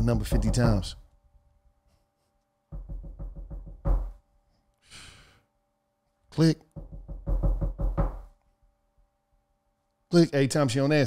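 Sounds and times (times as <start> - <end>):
hand knocking on a desk: 0.2 - 1.0, 2.7 - 4.2, 6.7 - 8.3
short breathy exhale: 4.8 - 5.4.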